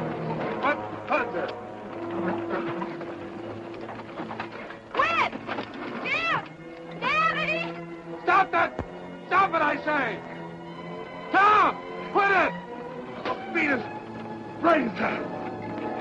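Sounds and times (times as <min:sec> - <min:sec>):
orchestral music: 0:00.0 - 0:16.0.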